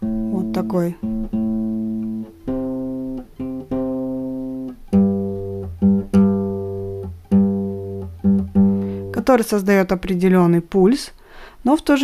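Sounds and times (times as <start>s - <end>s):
classical guitar bass notes: 0.0s - 9.5s.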